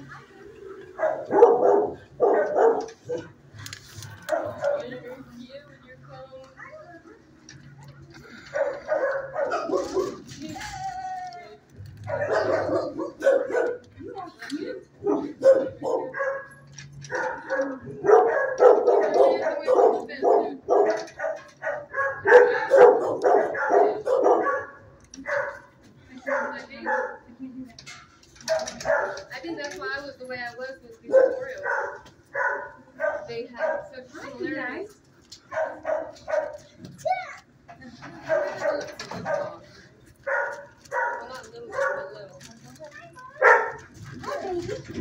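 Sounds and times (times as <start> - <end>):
dogs barking: 0.8 - 3.5, 4.2 - 5.1, 8.3 - 10.4, 11.8 - 14.2, 14.9 - 27.4, 28.4 - 30.0, 31.0 - 34.8, 35.4 - 36.9, 38.0 - 42.4, 43.2 - 45.0.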